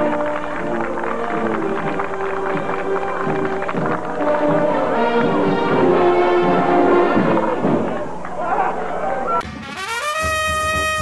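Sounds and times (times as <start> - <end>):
brass band playing: 0.0 - 7.9, 9.4 - 11.0
marching drums: 0.0 - 8.0, 9.4 - 11.0.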